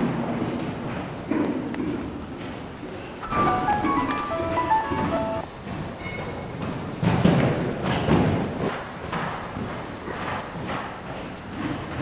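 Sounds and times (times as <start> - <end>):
brief higher tone: 3.2 - 5.4
short quick tune: 3.2 - 5.4.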